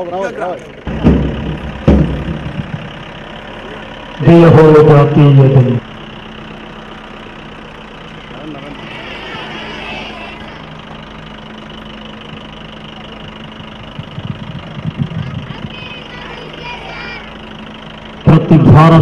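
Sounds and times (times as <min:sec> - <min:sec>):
jeep engine running: 0:00.0 - 0:19.0
low rumbles: 0:00.0 - 0:19.0
outdoor ambience: 0:00.0 - 0:19.0.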